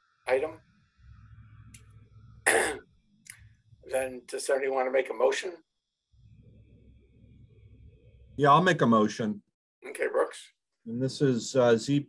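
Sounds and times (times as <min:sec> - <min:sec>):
person clearing throat: 0:02.5 - 0:02.8.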